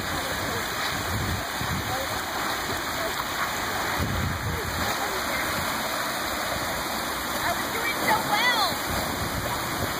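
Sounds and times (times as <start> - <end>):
water rushing down spillway: 0.0 - 9.9.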